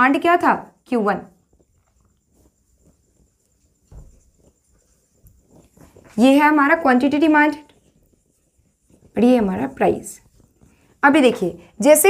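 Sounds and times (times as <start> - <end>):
marker scratching on whiteboard: 1.4 - 12.0
soft low thump: 3.9 - 4.3.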